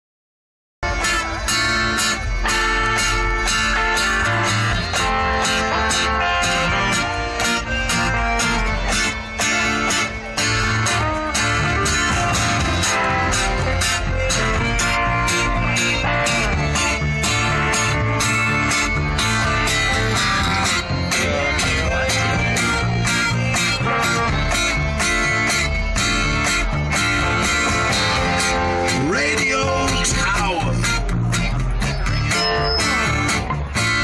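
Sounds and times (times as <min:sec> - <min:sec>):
drum kit steady beat: 0:00.8 - 0:32.2
accordion: 0:00.8 - 0:34.0
guitars: 0:00.8 - 0:34.0.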